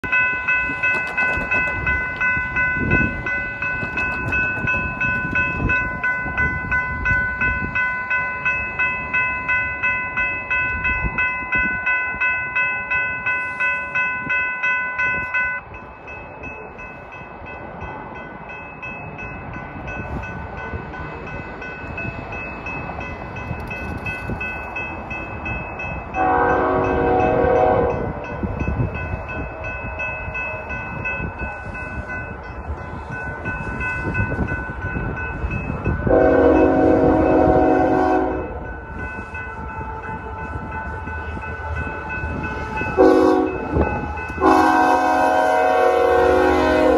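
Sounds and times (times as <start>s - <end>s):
crossing bell ringing: 0.0s - 46.9s
locomotive horn blast: 26.2s - 28.0s, 36.1s - 38.6s, 43.0s - 46.9s.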